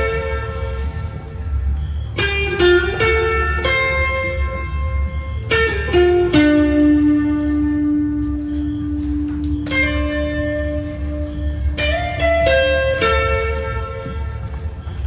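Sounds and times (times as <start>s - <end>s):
clean electric guitar melody: 2.1s - 15.0s.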